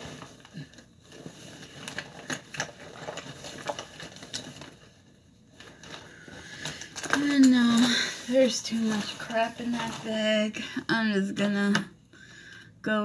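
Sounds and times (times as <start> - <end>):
bag rustling: 0.0 - 10.5.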